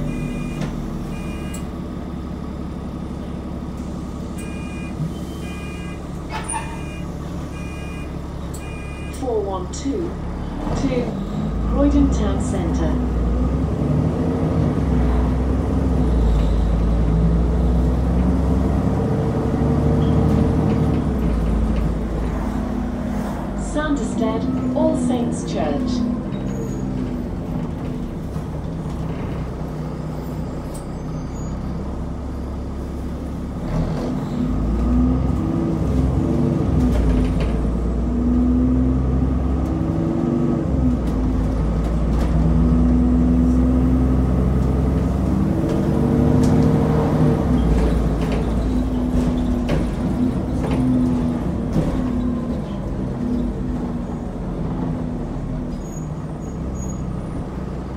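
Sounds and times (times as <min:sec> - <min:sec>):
bus diesel engine: 0:00.0 - 0:57.9.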